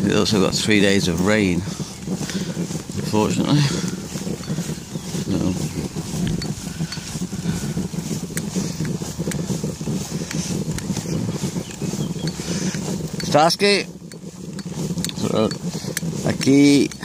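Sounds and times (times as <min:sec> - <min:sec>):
trike rolling on wet road: 0:00.0 - 0:17.0.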